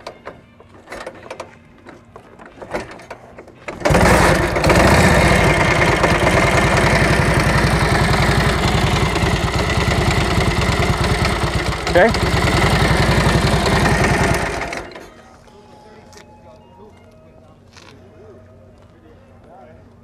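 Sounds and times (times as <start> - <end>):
motorcycle kick-started: 2.4 - 15.1
motorcycle engine idling: 3.7 - 15.1.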